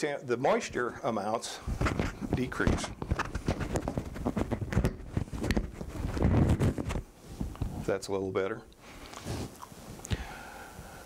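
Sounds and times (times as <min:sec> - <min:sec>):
lapel microphone handling rustle: 0:00.5 - 0:10.1.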